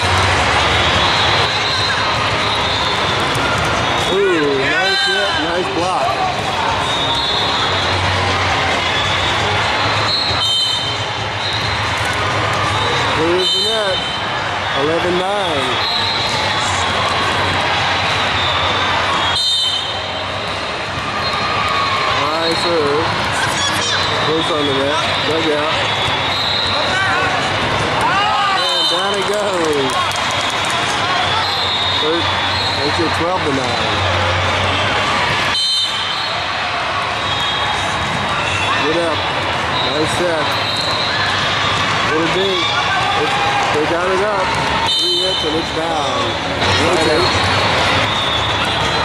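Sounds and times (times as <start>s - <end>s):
crowd and players din: 0.0s - 49.0s
voices calling out: 0.0s - 49.0s
volleyball hits: 40.6s - 49.0s.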